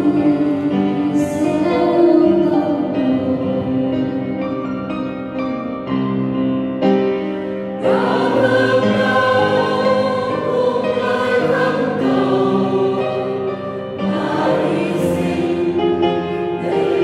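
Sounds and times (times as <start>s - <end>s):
choir singing a hymn in harmony: 0.0s - 5.1s, 7.2s - 17.0s
piano accompaniment: 0.0s - 17.0s.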